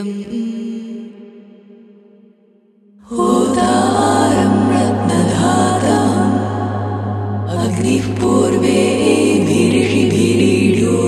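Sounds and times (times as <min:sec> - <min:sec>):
woman chanting: 0:00.0 - 0:01.3, 0:03.0 - 0:11.0
steady drone: 0:03.0 - 0:11.0.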